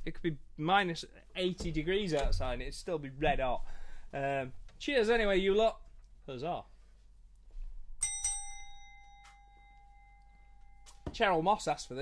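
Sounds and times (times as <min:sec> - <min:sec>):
wine glass clinking and ringing: 0:08.0 - 0:11.2.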